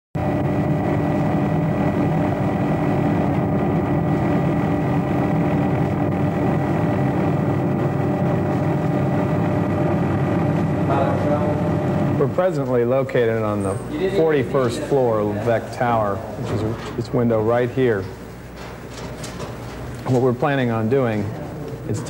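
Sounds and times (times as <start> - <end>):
steady engine drone: 0.2 - 22.0.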